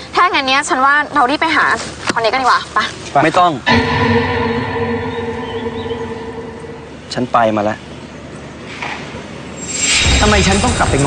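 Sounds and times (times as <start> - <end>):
held synthesizer chord: 3.7 - 7.3.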